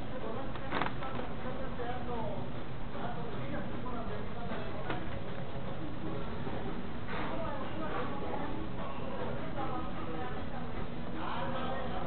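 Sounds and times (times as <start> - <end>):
fast-food restaurant background noise: 0.0 - 12.0.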